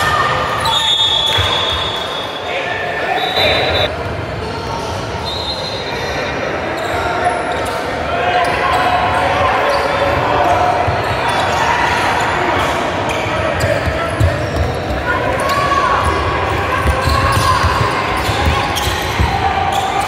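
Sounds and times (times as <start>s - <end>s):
spectators and coaches shouting: 7.3s - 20.0s.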